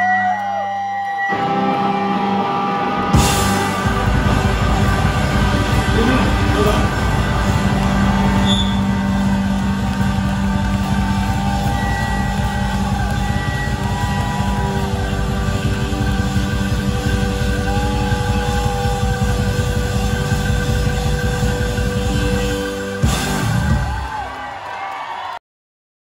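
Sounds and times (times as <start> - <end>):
live rock band: 0.0 - 24.5
electric guitars wailing: 0.0 - 25.0
low drone: 1.3 - 24.0.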